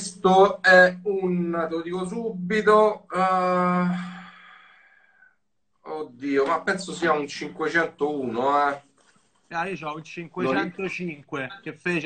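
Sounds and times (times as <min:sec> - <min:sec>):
man hesitating and sighing: 0:03.1 - 0:05.0.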